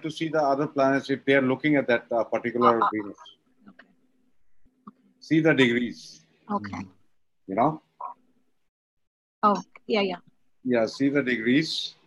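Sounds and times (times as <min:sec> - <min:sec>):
man speaking over video call: 0:00.0 - 0:03.3, 0:05.2 - 0:06.9, 0:10.6 - 0:12.0.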